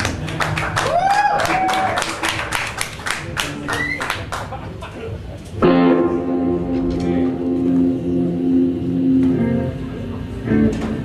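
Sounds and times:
amplified guitar chord ringing: 5.6s - 11.0s.

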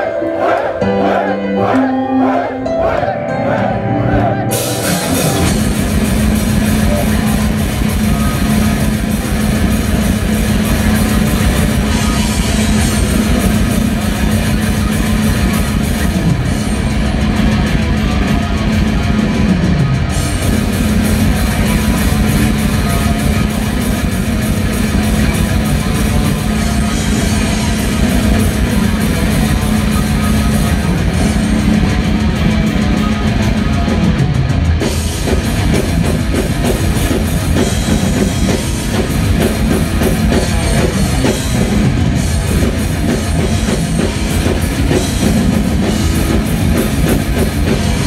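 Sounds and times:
metal band playing loud: 0.0s - 48.0s.

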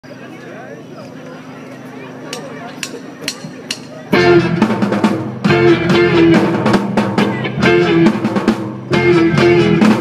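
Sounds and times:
rock band playing: 2.8s - 10.0s.

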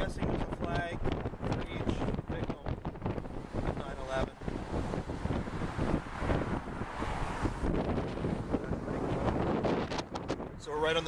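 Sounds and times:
low road rumble: 0.0s - 11.0s
wind buffeting microphone: 0.0s - 11.0s.

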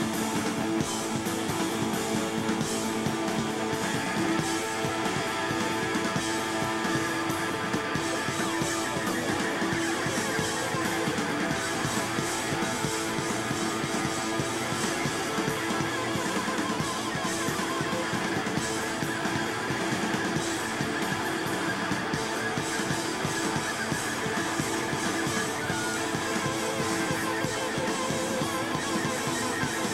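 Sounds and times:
drum kit: 0.0s - 29.9s
electric guitar: 0.0s - 29.9s.

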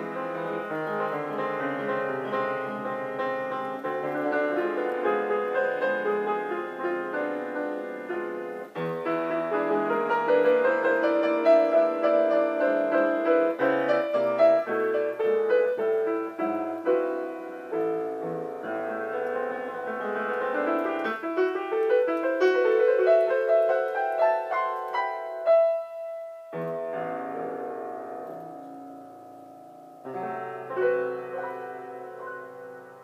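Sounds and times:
solo grand piano: 0.0s - 33.0s.

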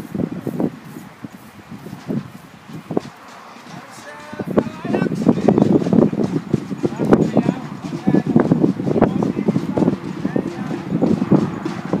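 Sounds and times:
low rumbling: 0.0s - 12.0s
people calling indistinctly: 3.3s - 12.0s.

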